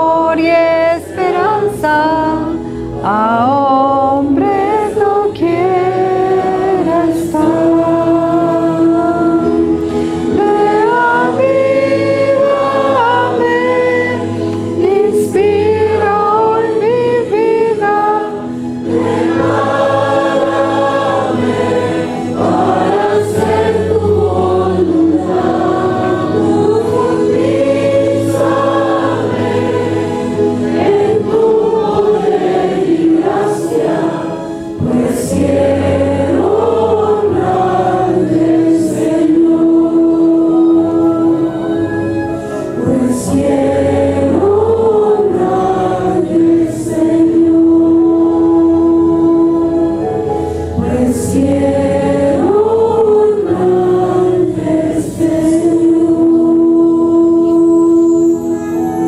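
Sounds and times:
women singing a hymn: 0.0 - 59.0.

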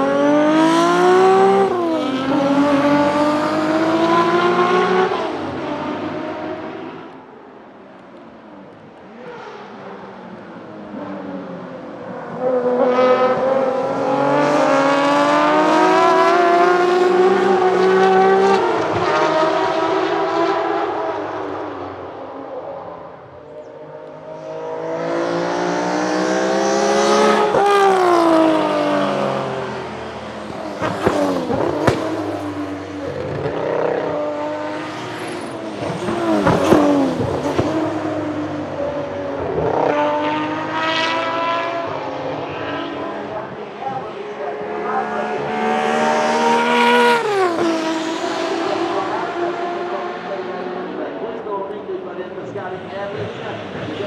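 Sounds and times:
race car engines passing: 0.0 - 54.0.

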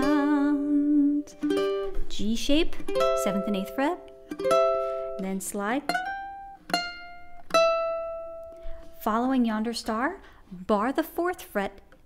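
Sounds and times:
ukulele notes plucked: 0.0 - 9.3.

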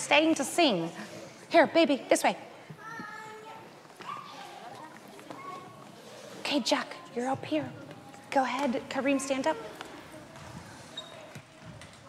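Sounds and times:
children's footsteps: 2.6 - 12.0.

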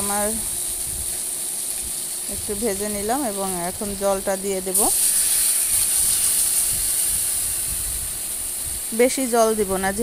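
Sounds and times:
water hissing in hot oil: 0.0 - 10.0.

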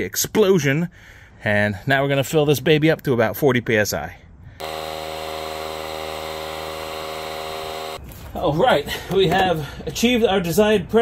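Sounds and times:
air compressor humming: 4.6 - 8.0.

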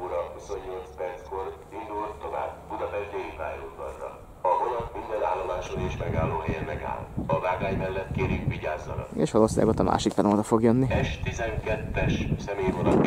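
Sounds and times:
loudspeaker announcement voice: 0.0 - 10.0, 10.8 - 13.0.

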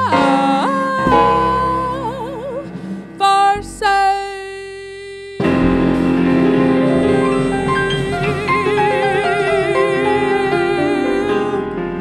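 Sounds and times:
piano chords: 0.0 - 4.6, 5.4 - 12.0
woman singing with vibrato: 0.0 - 5.6, 6.6 - 11.8
jazz band playing: 5.4 - 10.5.

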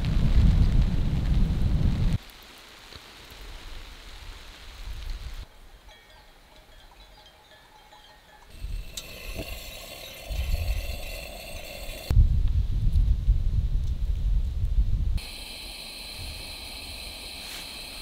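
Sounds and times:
low wind rumble: 0.0 - 2.2, 8.5 - 18.0
soft steady hiss: 2.1 - 12.1, 15.2 - 18.0
sheep bells clinking: 5.5 - 12.1.

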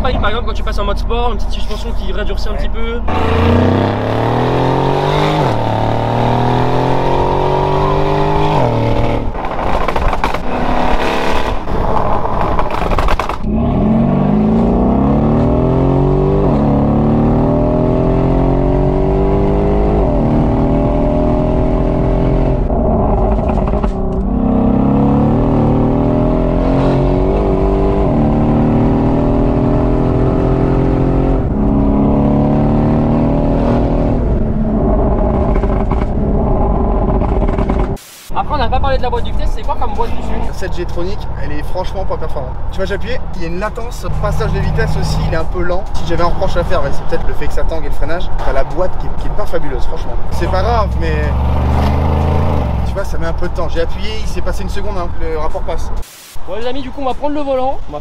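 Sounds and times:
car engine accelerating hard: 3.1 - 38.0, 43.6 - 47.0, 50.0 - 54.6.

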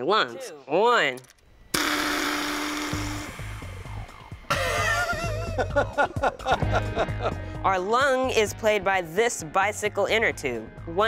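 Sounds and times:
whoopee cushion buzzing raspberry: 1.7 - 5.0
background music with low beat: 1.8 - 11.0.

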